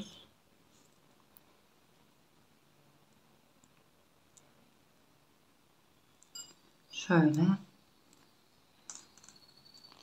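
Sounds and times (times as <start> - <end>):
glass beads clicking together: 8.8 - 10.0
line squeaking through bead: 8.8 - 10.0.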